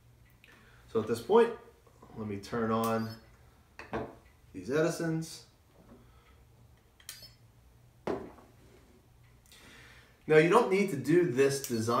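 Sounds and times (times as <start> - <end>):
knock on wooden table: 8.0 - 8.4.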